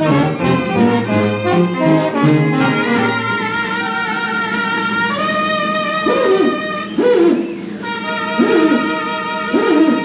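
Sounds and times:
brass band held chord: 0:00.0 - 0:10.0
brass instrument swooping phrases: 0:00.0 - 0:10.0.

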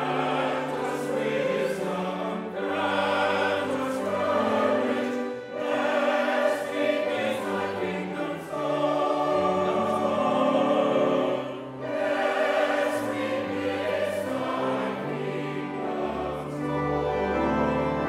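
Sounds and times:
church choir singing: 0:00.0 - 0:18.0.

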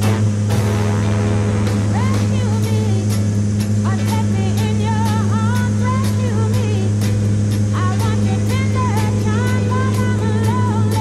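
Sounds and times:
propeller engines droning: 0:00.0 - 0:11.0
soul song: 0:00.0 - 0:11.0
person singing: 0:01.9 - 0:03.2, 0:07.8 - 0:11.0.

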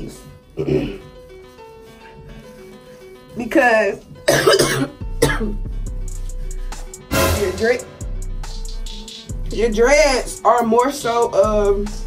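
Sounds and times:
background music with low bass: 0:00.0 - 0:12.0
person coughing: 0:00.6 - 0:01.0, 0:04.3 - 0:05.7.

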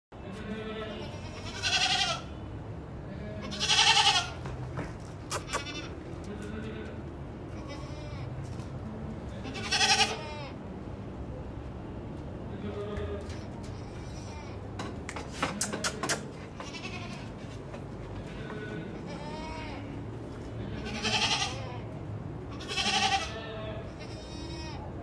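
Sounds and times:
quiet voices murmuring: 0:00.2 - 0:25.0
goats bleating: 0:00.4 - 0:02.4, 0:03.3 - 0:04.4, 0:05.3 - 0:08.4, 0:09.3 - 0:10.6, 0:13.2 - 0:14.6, 0:16.5 - 0:17.6, 0:18.2 - 0:25.0.

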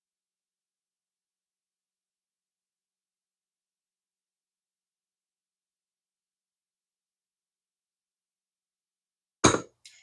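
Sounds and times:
sharp knock on workbench: 0:09.4 - 0:09.7.

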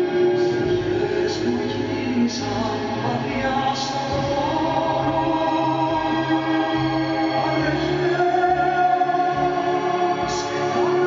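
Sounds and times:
choir-like chords: 0:00.0 - 0:11.0
person singing slow song: 0:00.0 - 0:11.0.

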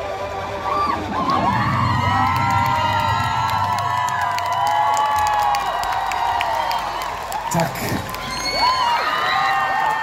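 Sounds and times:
crowd cheering and screaming: 0:00.0 - 0:10.0.

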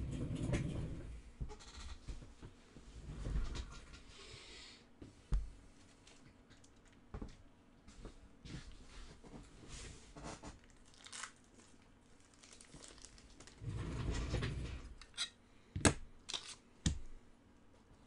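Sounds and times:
packaging crinkling and rustling: 0:10.2 - 0:13.6.

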